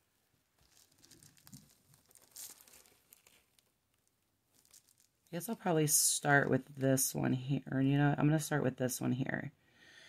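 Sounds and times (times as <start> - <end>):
plastic mesh crinkling and rustling: 0.4 - 5.9.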